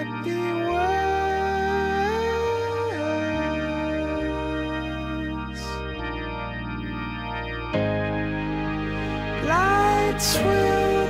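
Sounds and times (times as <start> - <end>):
man singing long notes: 0.0 - 5.8, 9.4 - 11.0
slow bass notes: 0.0 - 11.0
sustained organ chords: 0.0 - 11.0.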